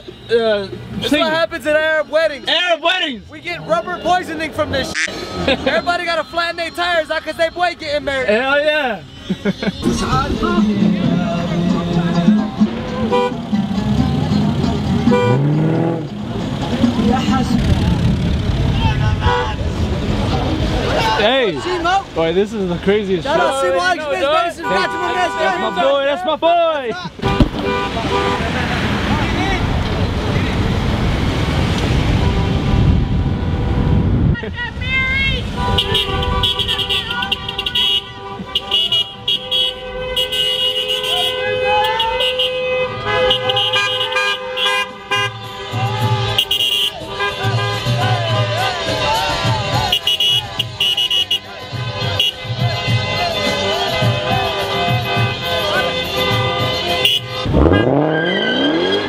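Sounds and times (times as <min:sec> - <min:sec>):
car engines rumbling: 0:00.0 - 0:59.0
people laughing: 0:04.8 - 0:06.3, 0:08.9 - 0:11.9
people shouting: 0:34.5 - 0:39.6, 0:40.2 - 0:59.0.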